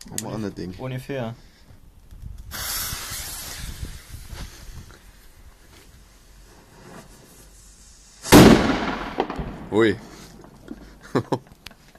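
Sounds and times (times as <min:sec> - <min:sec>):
fuse hissing and sputtering: 0:02.5 - 0:04.9
loud firecracker bang: 0:08.2 - 0:10.5.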